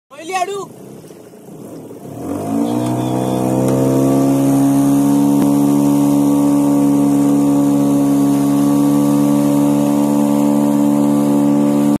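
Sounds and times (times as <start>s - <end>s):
boat engine: 0.1s - 12.0s.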